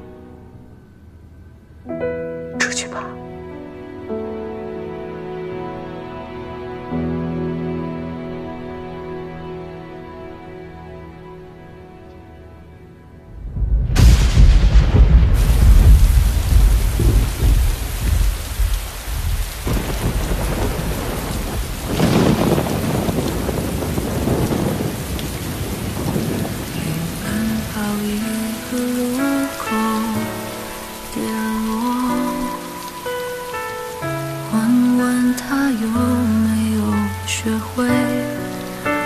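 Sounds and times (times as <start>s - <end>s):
heavy rain: 2.6s - 12.2s, 13.2s - 39.0s
deep thunder rumble: 13.3s - 35.3s.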